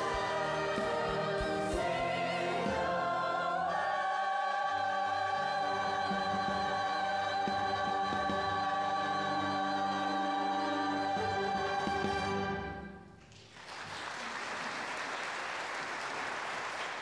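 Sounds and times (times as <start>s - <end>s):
orchestra playing: 0.0s - 3.9s, 5.0s - 13.2s
mixed choir singing: 0.0s - 12.8s.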